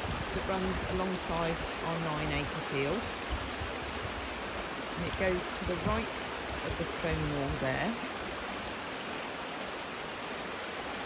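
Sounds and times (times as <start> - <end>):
stream rushing over stones: 0.0 - 11.0.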